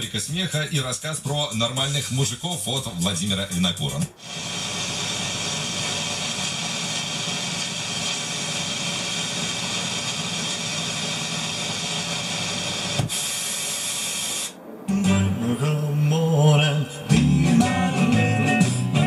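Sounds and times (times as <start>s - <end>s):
radio static hiss: 0.0s - 19.0s.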